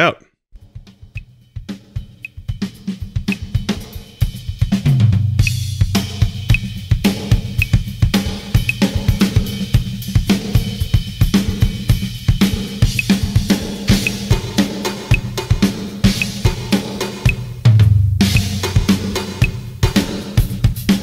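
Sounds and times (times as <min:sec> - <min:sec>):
drum kit playing: 0:00.6 - 0:21.0
click track ticking: 0:07.6 - 0:07.8, 0:08.6 - 0:08.9, 0:14.0 - 0:14.2.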